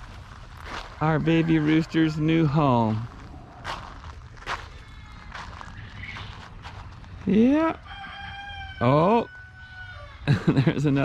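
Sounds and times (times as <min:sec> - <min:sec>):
footsteps on gravel: 0:00.0 - 0:07.5.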